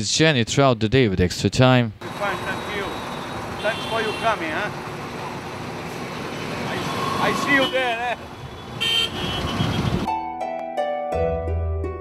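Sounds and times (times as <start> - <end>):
street traffic noise: 2.0 - 10.1
car horn toot: 2.1 - 4.7, 7.2 - 10.1.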